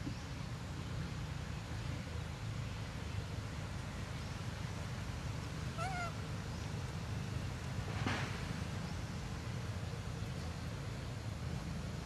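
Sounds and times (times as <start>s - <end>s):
macaque high coo: 5.8s - 6.2s.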